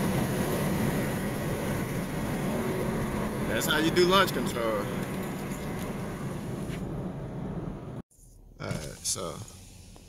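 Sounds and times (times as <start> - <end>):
car engine running: 0.0 - 8.0
road and tyre noise: 0.0 - 10.0.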